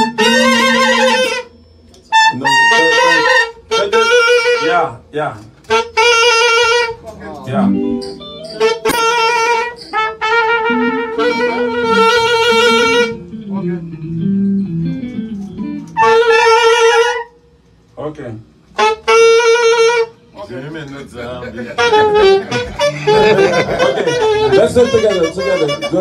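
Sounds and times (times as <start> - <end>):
saxophone and trombone riff: 0.0 - 4.9, 5.7 - 7.0, 7.6 - 14.2, 15.0 - 17.4, 18.8 - 20.2, 21.7 - 26.0.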